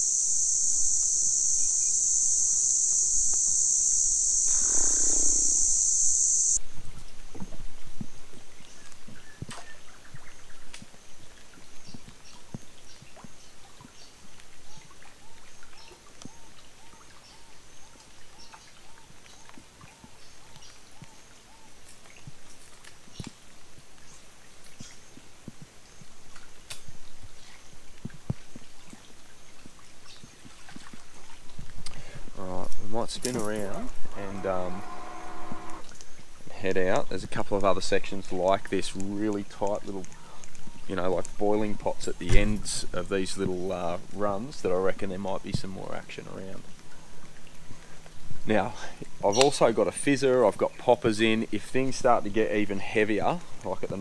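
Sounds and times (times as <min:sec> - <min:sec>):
faint high chirps: 0:00.0 - 0:06.6, 0:34.0 - 0:35.9
loud high insect buzz: 0:00.0 - 0:06.6, 0:33.6 - 0:36.0
lower-pitched call: 0:00.0 - 0:06.6, 0:33.8 - 0:35.9.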